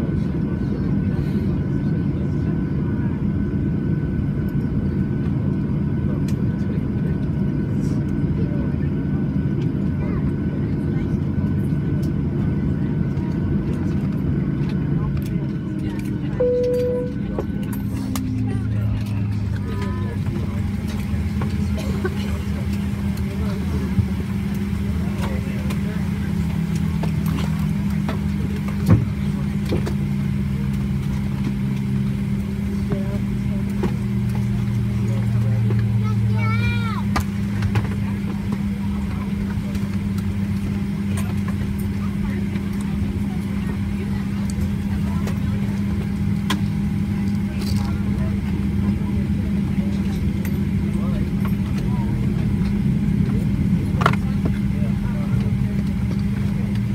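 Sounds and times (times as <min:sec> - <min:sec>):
aircraft cabin drone: 0:00.0 - 0:56.9
passenger chatter: 0:00.0 - 0:56.9.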